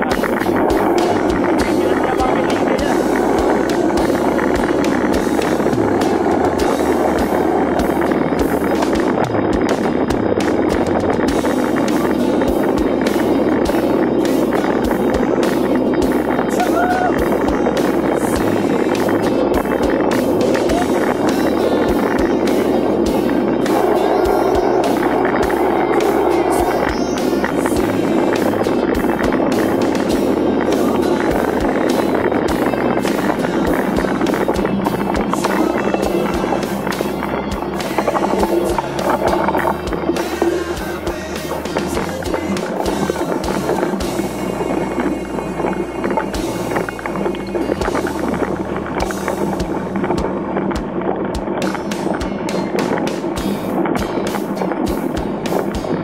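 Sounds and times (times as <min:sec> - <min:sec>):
bike rattling and knocking: 0:00.0 - 0:44.4, 0:46.1 - 0:56.0
tyres crunching on dirt: 0:00.0 - 0:56.0
wind on microphone: 0:00.0 - 0:56.0.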